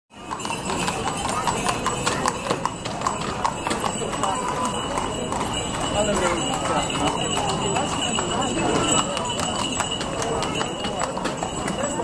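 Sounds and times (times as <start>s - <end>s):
horse hooves clip-clopping: 0.3s - 12.0s.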